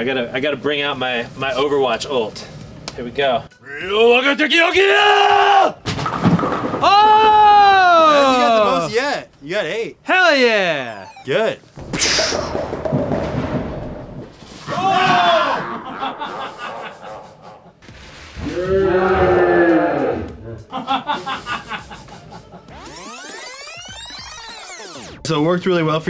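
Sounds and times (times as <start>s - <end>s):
man shouting: 3.6s - 5.8s, 6.8s - 9.2s, 14.7s - 15.7s
bowling pins clattering: 5.9s - 6.8s, 11.8s - 15.4s.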